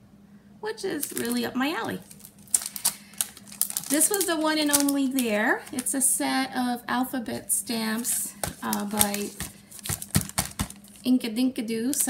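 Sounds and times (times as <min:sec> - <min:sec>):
woman's voice: 0:00.6 - 0:02.0, 0:03.9 - 0:09.4, 0:11.0 - 0:12.0
plastic packaging crackling: 0:00.9 - 0:06.2, 0:07.3 - 0:11.1.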